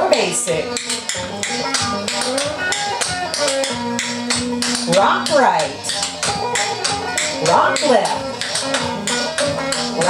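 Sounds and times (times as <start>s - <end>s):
music playing: 0.0s - 10.0s
tap shoes clicking on hard floor: 0.8s - 10.0s.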